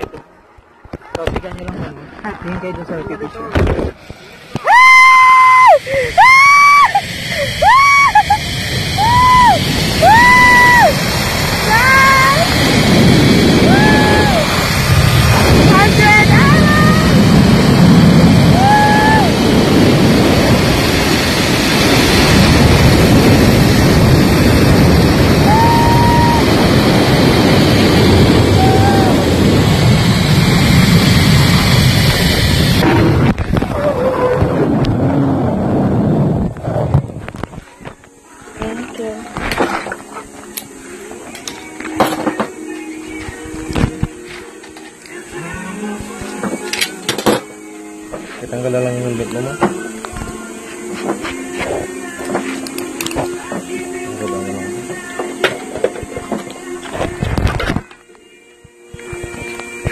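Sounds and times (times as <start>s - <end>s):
wind rushing over microphone: 6.3s - 38.0s.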